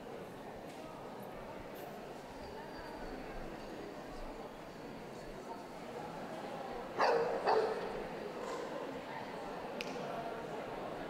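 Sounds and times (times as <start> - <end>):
dog barking: 7.0 - 7.9.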